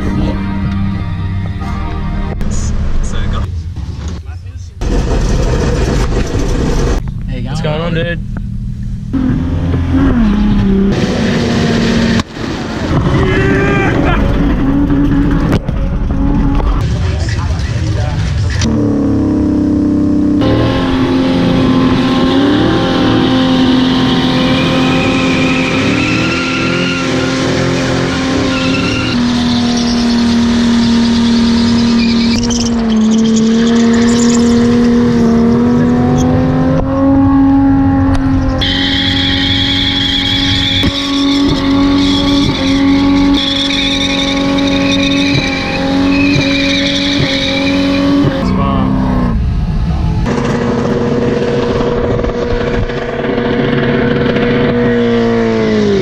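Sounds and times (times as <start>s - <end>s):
car engine at high revs: 4.8s - 56.0s
tyres squealing: 24.2s - 36.3s, 38.4s - 48.6s.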